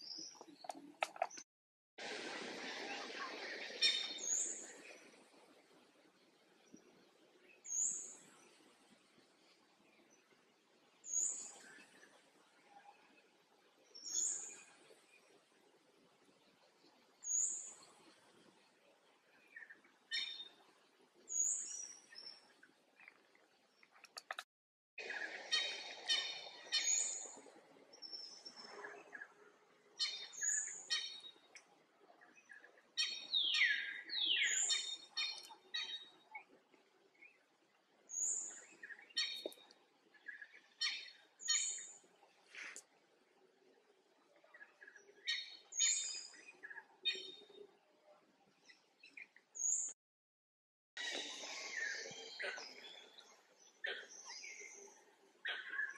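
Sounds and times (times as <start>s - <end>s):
birds calling faintly: 6.1s - 50.0s, 51.0s - 55.9s.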